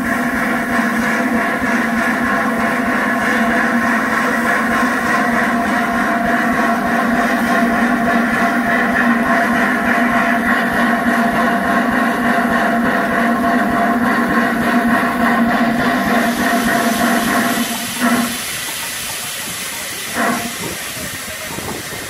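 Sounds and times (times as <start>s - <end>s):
steam locomotive hissing steam: 0.0s - 22.0s.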